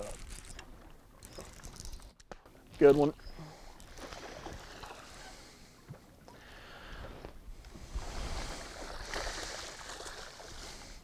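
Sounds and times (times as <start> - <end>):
wind: 0.0 - 11.0
fish splashing at water surface: 8.4 - 10.9.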